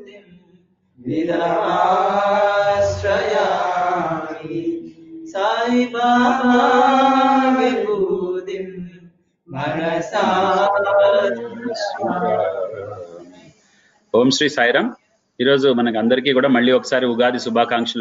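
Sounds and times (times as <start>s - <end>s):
person chanting a mantra: 1.1s - 4.5s, 9.5s - 13.5s.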